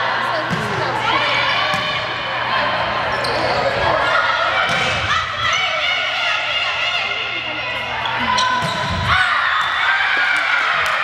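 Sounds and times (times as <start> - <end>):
spectators' voices: 0.0 - 11.0
volleyball hits: 1.7 - 2.2, 4.6 - 5.2, 8.4 - 11.0.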